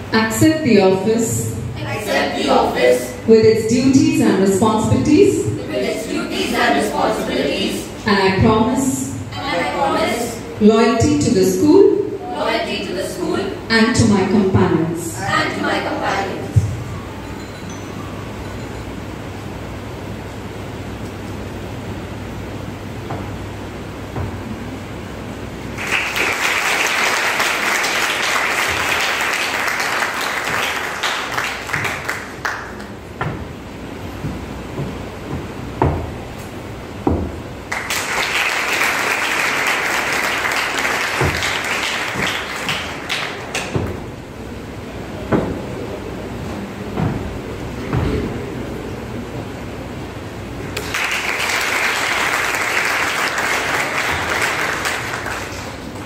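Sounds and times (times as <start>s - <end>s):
low steady hum: 0.0s - 56.0s
audience applauding: 25.7s - 33.0s, 37.7s - 44.0s, 50.8s - 56.0s
scattered knocks: 34.2s - 36.4s.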